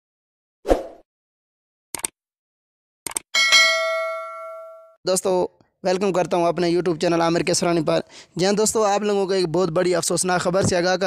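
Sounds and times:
notification bell ding: 0:03.4 - 0:05.0.

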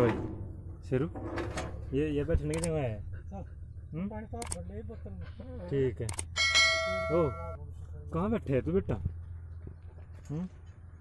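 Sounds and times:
bright bell ding: 0:06.4 - 0:07.6.

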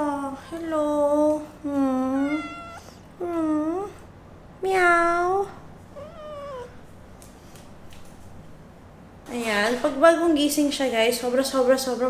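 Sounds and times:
cat meowing: 0:02.0 - 0:03.0, 0:04.8 - 0:06.8.

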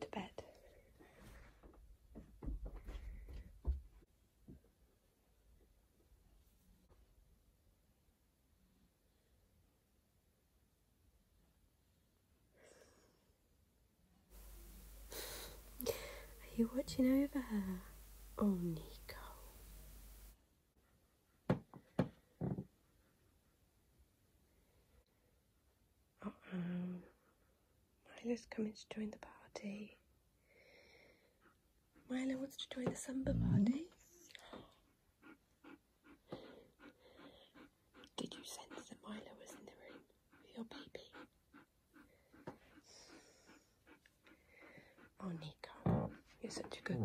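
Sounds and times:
breathy sound: 0:14.4 - 0:16.5
person whispering: 0:14.4 - 0:20.0, 0:38.2 - 0:41.3
dog panting softly: 0:19.0 - 0:21.5, 0:22.7 - 0:24.1, 0:31.2 - 0:33.3, 0:33.9 - 0:47.0.

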